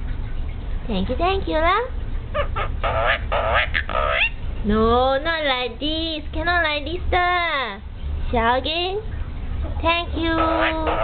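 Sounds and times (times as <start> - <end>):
myna bird squawking: 2.3 - 4.4, 10.2 - 11.0.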